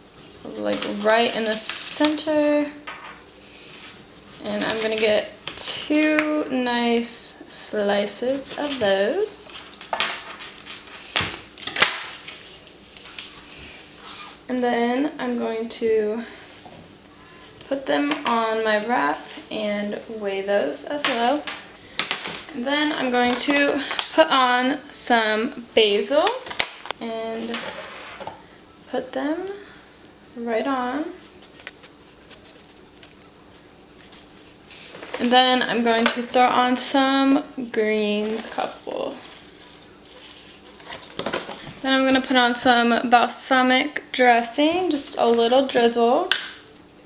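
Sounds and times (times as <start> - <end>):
faint handling noise: 31.2 - 36.6.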